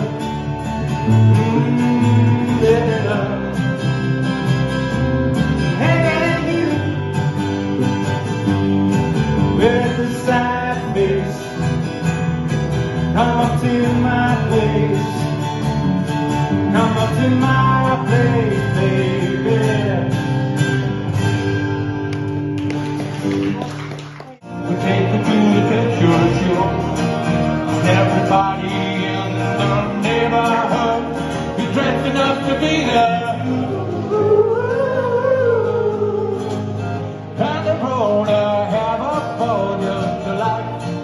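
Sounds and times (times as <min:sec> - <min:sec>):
acoustic guitars strummed: 0:00.0 - 0:41.0
man singing into microphone: 0:01.1 - 0:03.8, 0:05.7 - 0:07.1, 0:09.5 - 0:11.6, 0:13.1 - 0:15.4, 0:16.7 - 0:20.3, 0:24.5 - 0:41.0.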